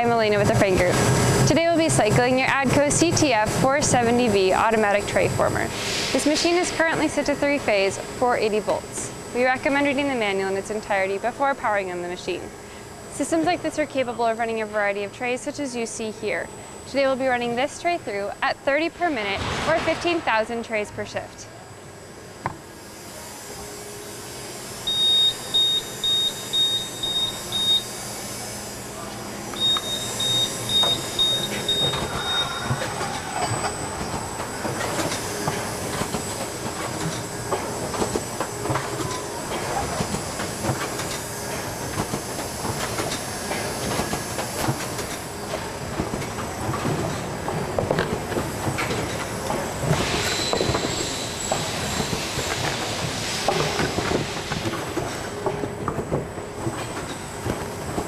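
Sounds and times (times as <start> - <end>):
high-pitched beeper: 24.9 - 28.0, 29.6 - 33.0.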